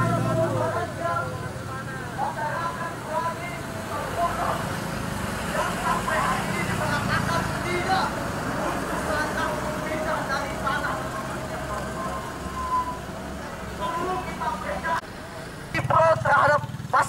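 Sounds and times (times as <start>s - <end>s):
people talking: 0.0s - 15.1s, 15.7s - 17.0s
vehicle engines running slowly: 0.0s - 17.0s.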